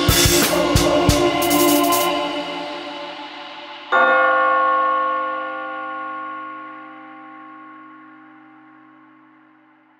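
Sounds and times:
bell-like note ringing out: 3.9s - 9.9s.

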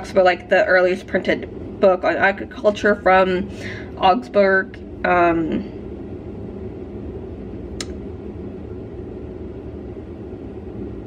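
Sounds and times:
room noise hum and rumble: 0.0s - 11.0s.

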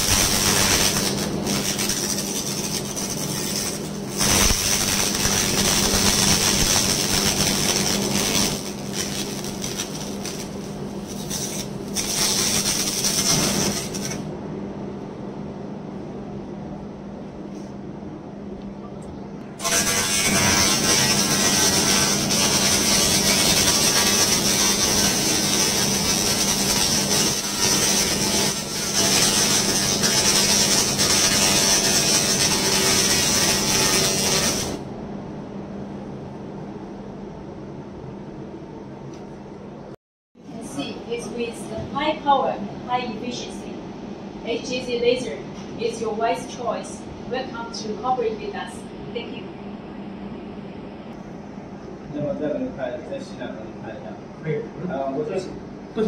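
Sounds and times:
laser hissing and crackling on rust: 0.0s - 14.3s, 19.6s - 34.8s
low machine hum: 0.0s - 56.0s.

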